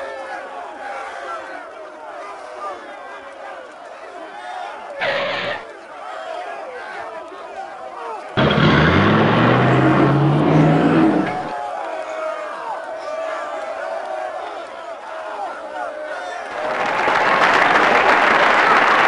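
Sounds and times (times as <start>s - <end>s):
crowd chatter: 0.0s - 19.0s
short burst of noise: 5.0s - 5.6s, 8.4s - 11.5s
car engine revving: 8.4s - 11.5s.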